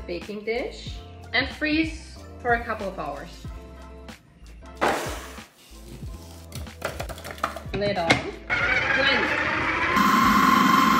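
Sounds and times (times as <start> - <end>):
background music: 0.0 - 10.9
food processor motor running: 8.5 - 10.9.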